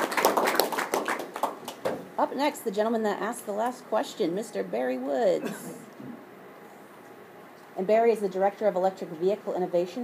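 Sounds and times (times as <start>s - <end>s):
audience applause: 0.0s - 1.8s.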